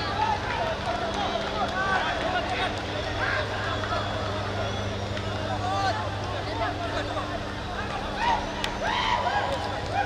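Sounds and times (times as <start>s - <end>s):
footballers shouting: 0.0s - 10.0s.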